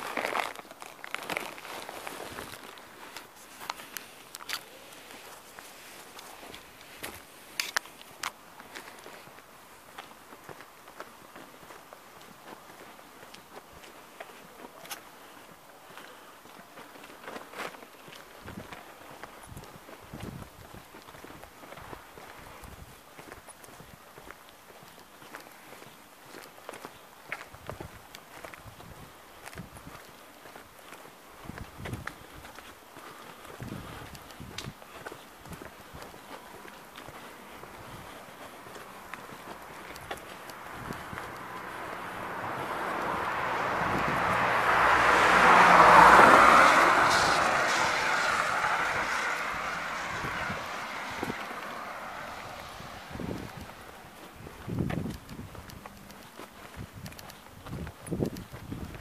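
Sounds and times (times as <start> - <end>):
footsteps on pavement: 0.0 - 59.0
car passing by: 37.2 - 54.5.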